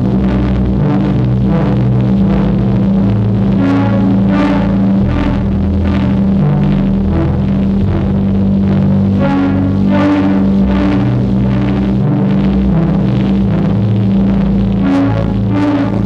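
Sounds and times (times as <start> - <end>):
synthesizer held low tone: 0.0 - 16.0.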